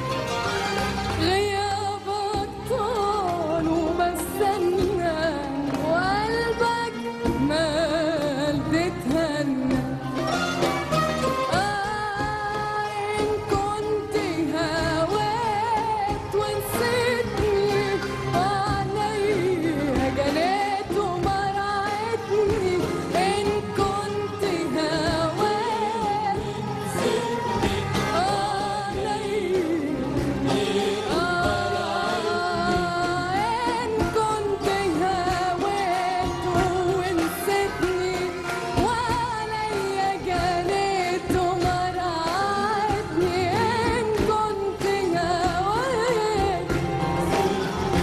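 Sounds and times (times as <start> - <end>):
band playing: 0.0 - 48.0
woman singing with vibrato: 1.0 - 48.0.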